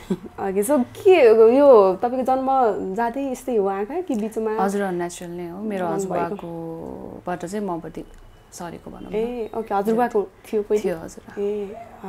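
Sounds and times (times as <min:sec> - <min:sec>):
woman speaking: 0:00.3 - 0:12.0.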